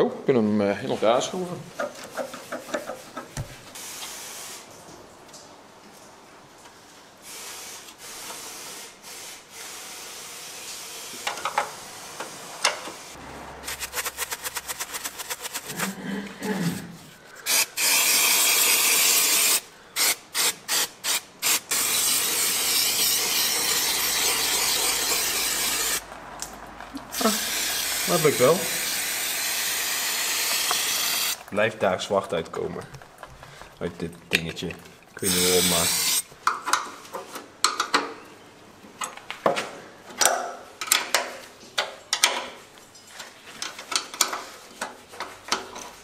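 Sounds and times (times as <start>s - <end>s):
aerosol can spraying: 17.4s - 26.0s, 27.1s - 31.4s, 35.2s - 36.2s.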